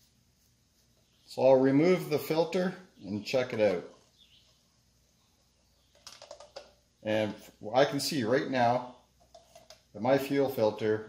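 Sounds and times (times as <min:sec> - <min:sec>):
small hard clicks and rattles: 0:05.9 - 0:06.8.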